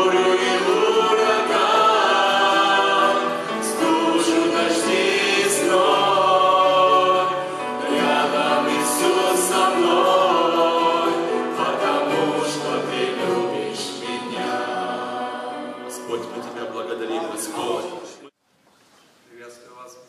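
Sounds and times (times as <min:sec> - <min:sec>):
grand piano: 0:00.0 - 0:18.3
mixed voices singing a hymn: 0:00.0 - 0:18.3.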